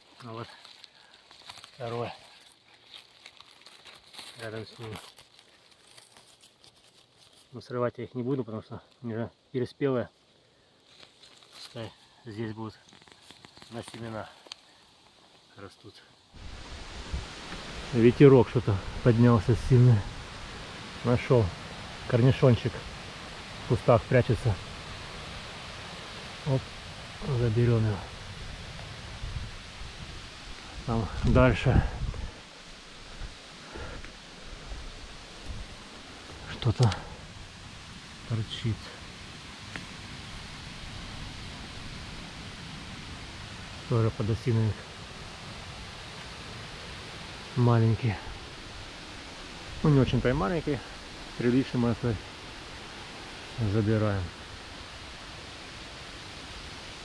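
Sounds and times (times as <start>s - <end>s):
dry leaf litter crackling: 0.0s - 7.7s, 10.8s - 15.0s
wind rustling leaves: 0.0s - 57.0s.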